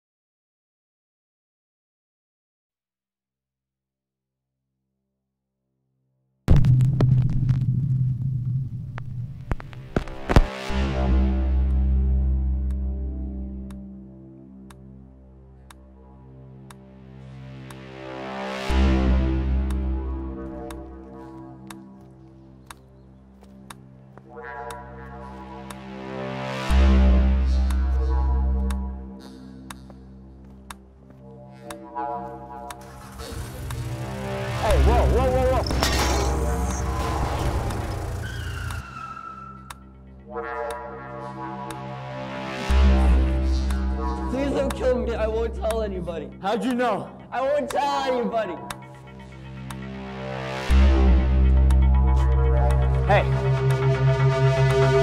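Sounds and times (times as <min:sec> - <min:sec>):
deep low rumble: 0:06.5 - 0:10.2
crackling static clicks: 0:08.9 - 0:10.6, 0:32.7 - 0:38.8
wavering squeal: 0:32.9 - 0:39.9.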